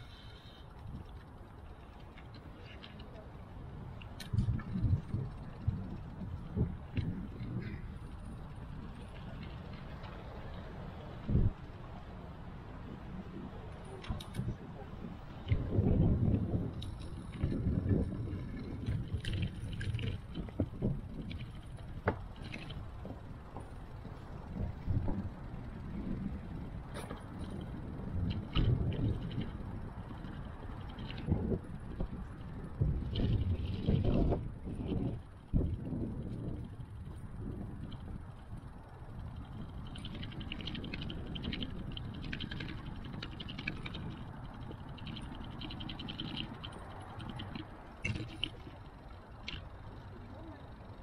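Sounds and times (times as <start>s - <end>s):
bicycle knocks and rattles: 0.0s - 11.9s, 12.8s - 51.0s
bicycle riding rumble: 0.0s - 51.0s.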